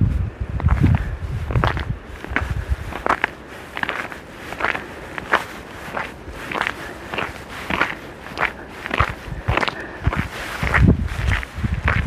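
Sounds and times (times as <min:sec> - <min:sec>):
footsteps in snow: 0:00.6 - 0:12.0.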